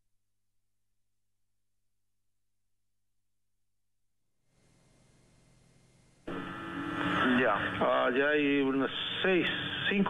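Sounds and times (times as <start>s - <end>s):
radio hum and static: 4.6s - 10.0s.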